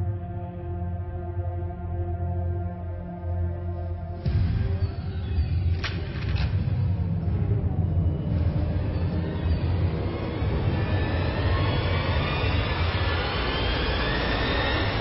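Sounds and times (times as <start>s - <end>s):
heavy low rumble: 3.8s - 15.0s
rising tension swell: 6.7s - 15.0s.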